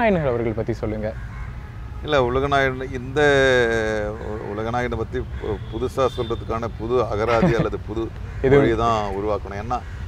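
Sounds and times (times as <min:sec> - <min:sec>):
man talking: 0:02.0 - 0:09.8.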